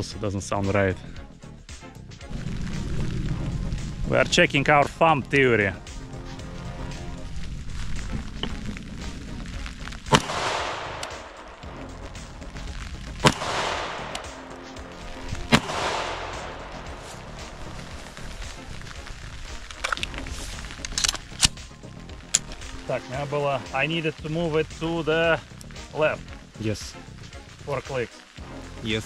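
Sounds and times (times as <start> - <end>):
rifle shots with rolling echo: 10.1 - 11.6, 13.2 - 14.6, 15.4 - 17.6
small clicks: 19.6 - 22.7.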